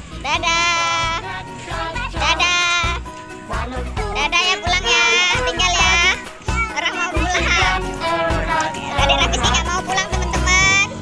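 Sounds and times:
children's song with singing: 0.0 - 11.0
children's voices: 0.2 - 3.0, 4.1 - 11.0.

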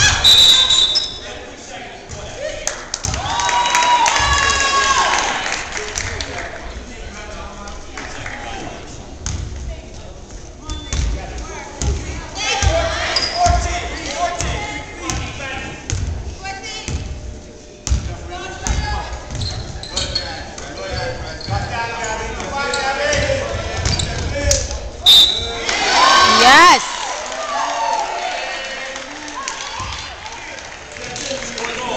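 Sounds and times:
spectators' voices echoing: 20.4 - 27.1.

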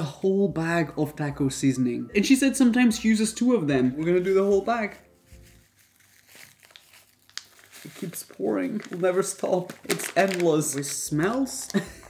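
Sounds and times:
faint music: 0.0 - 12.0
plastic packet crinkling: 4.0 - 12.0.

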